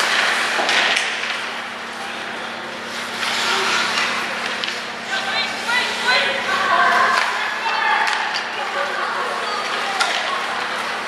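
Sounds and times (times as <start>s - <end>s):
skate blades scraping ice: 3.0s - 4.7s.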